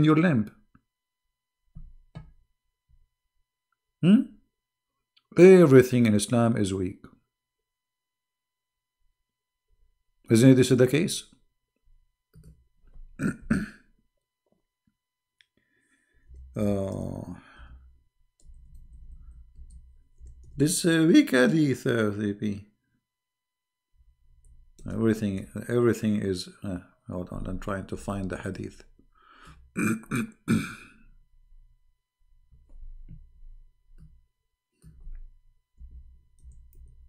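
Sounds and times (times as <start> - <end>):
throat sounds: 13.0 - 13.9, 29.4 - 31.1
man coughing: 13.2 - 13.9, 29.8 - 31.0.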